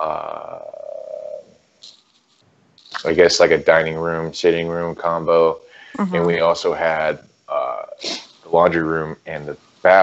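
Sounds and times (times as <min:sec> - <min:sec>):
person saying uh: 0:00.0 - 0:01.4, 0:03.0 - 0:10.0
faint hiss: 0:00.0 - 0:10.0.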